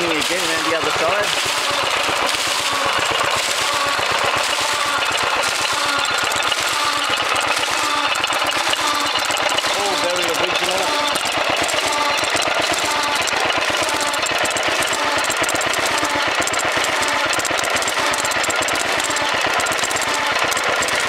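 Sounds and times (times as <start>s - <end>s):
stationary engine clattering: 0.0s - 21.0s
water gushing: 0.0s - 21.0s.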